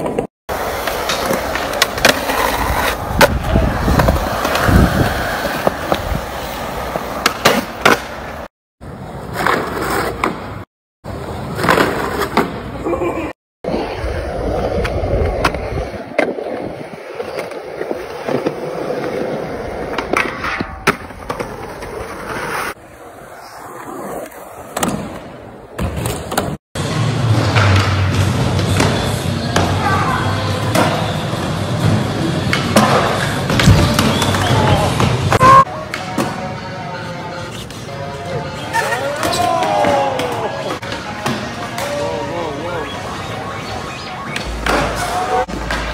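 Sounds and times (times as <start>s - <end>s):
skateboard wheels on rough concrete: 0.0s - 12.8s, 13.6s - 29.4s
skateboard hitting concrete: 7.0s - 8.2s
background music: 35.7s - 45.3s.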